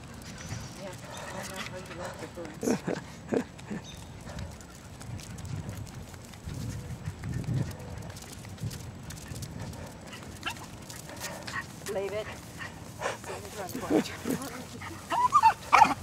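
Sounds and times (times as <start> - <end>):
rumble of camera movement: 3.2 - 16.0
dogs yipping: 9.2 - 13.2, 14.4 - 16.0.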